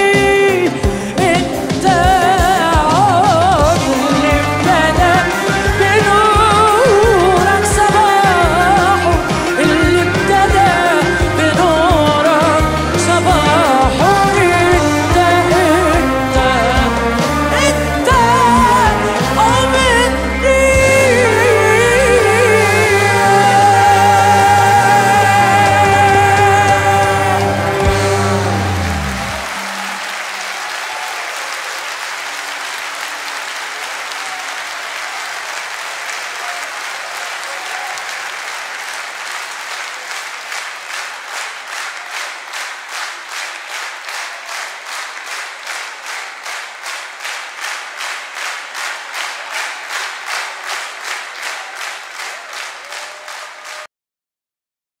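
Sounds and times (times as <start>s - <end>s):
orchestra: 0.0s - 39.4s
rhythmic clapping in unison: 1.2s - 53.9s
audience applause: 1.7s - 53.9s.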